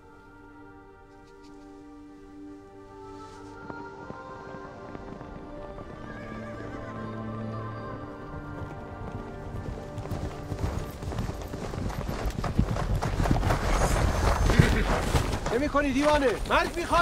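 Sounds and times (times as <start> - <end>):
film score music: 0.0 - 17.0
horses galloping on sand: 3.4 - 17.0.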